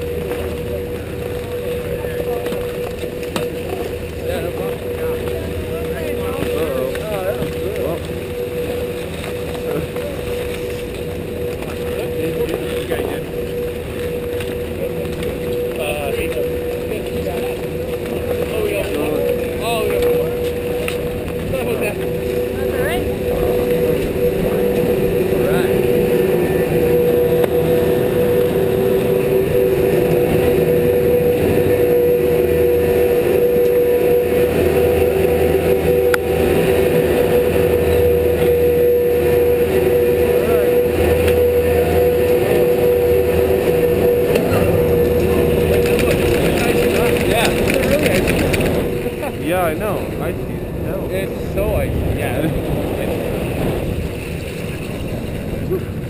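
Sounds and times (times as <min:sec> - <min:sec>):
chairlift machinery whine and hum: 0:00.0 - 0:56.0.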